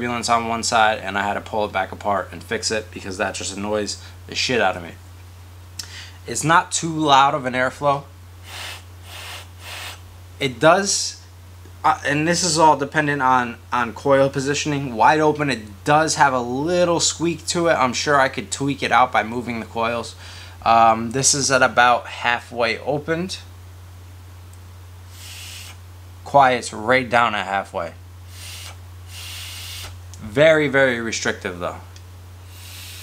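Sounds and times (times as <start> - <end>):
airy hiss of air pulls: 8.4 - 10.0, 25.1 - 25.8, 28.3 - 30.0, 32.4 - 33.0.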